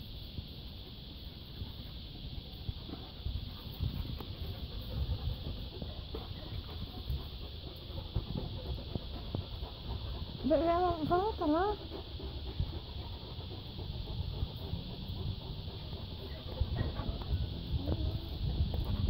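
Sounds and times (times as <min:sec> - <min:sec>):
high-pitched hiss: 0:00.0 - 0:19.0.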